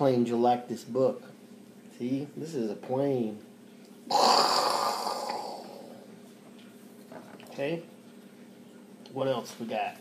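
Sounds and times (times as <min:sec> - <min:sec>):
man making warplane sound with mouth: 0:04.1 - 0:06.0.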